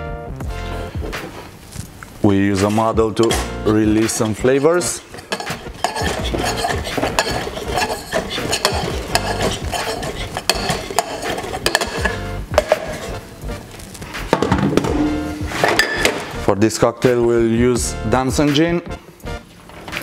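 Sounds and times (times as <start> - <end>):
background music: 0.0 - 20.0
muddler knocking in metal tin: 3.2 - 13.0.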